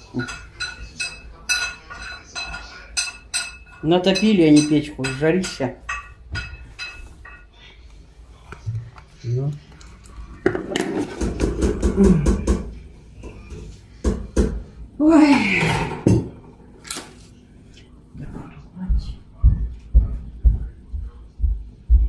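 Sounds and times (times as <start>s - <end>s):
crockery and spoons clinking: 0.0s - 7.7s.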